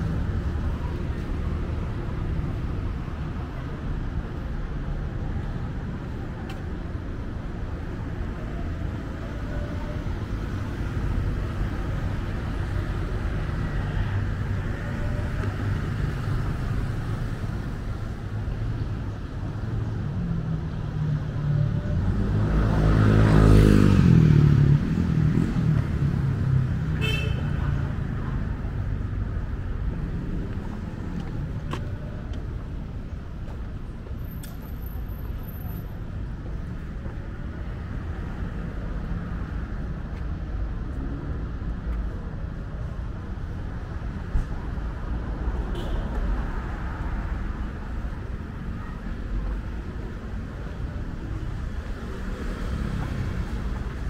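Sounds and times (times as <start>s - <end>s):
low rumble of road traffic: 0.0s - 54.0s.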